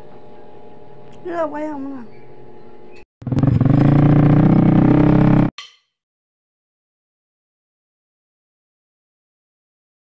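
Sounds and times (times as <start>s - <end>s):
engine running loud: 3.2s - 5.5s.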